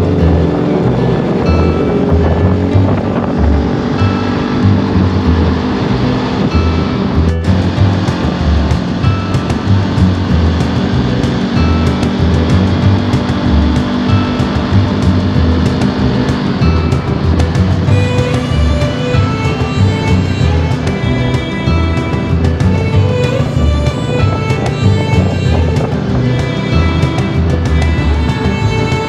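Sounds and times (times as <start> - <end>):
motorcycle engine droning: 0.0 - 29.0
music with steady beat: 0.0 - 29.0
wind rush: 0.0 - 29.0.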